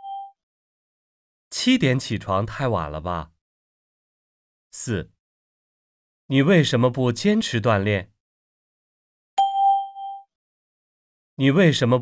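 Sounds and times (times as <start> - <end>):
bright chime ding: 0.0 - 0.3, 9.4 - 10.2.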